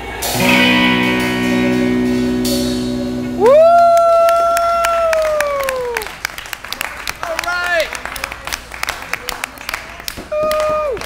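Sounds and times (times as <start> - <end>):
cymbal crash: 0.3 - 3.6
electric guitar and bass chord: 0.3 - 3.9
person whooping: 3.4 - 6.1, 10.3 - 11.0
audience clapping: 3.5 - 11.0.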